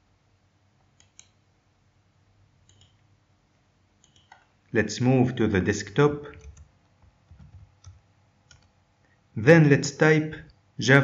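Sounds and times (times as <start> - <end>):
faint computer clicks: 0.9 - 1.4, 2.6 - 3.0, 4.0 - 4.5.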